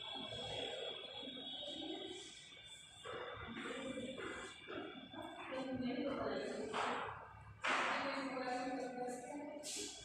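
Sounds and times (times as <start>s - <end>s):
faint high whine: 0.0s - 7.3s.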